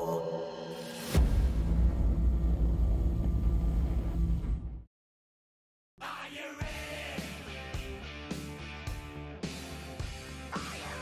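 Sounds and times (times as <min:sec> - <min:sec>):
deep cinematic rumble: 0:01.2 - 0:04.9.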